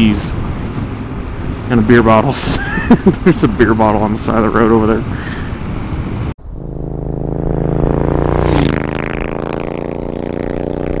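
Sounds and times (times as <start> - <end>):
motorcycle passing by: 6.2 - 11.0.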